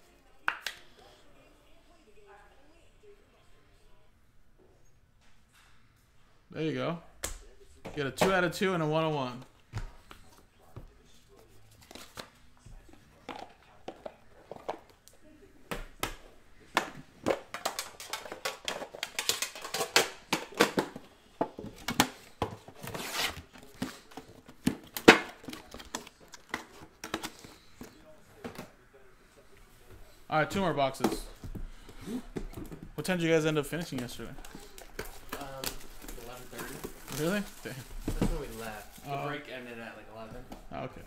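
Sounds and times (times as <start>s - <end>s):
cards and boxes clicking: 16.0s - 28.0s
plastic wrap crinkling and tearing: 34.4s - 39.2s.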